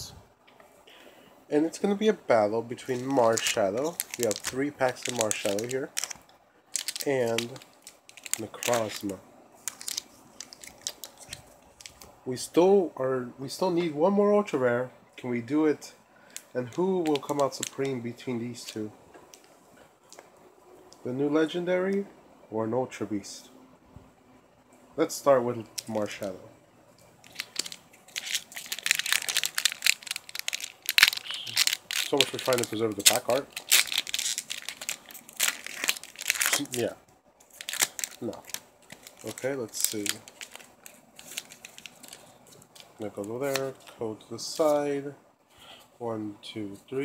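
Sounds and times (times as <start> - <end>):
foil packs crinkling: 2.7 - 12.1, 16.7 - 18.0, 27.2 - 43.9.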